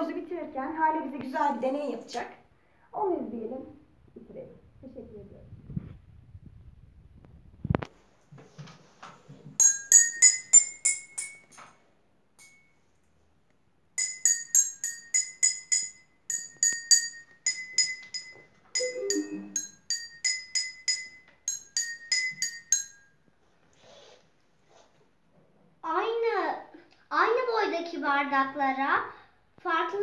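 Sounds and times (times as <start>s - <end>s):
water glasses struck with spoon: 9.6s - 11.6s, 12.4s - 12.7s, 14.0s - 23.0s.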